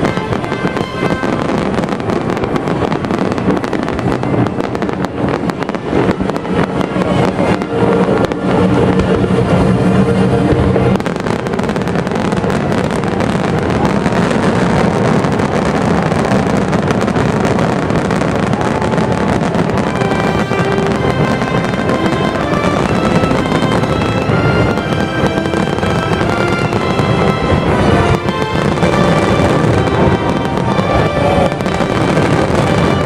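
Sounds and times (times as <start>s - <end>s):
fireworks bursting and crackling: 0.0s - 33.0s
music with held notes: 0.0s - 33.0s.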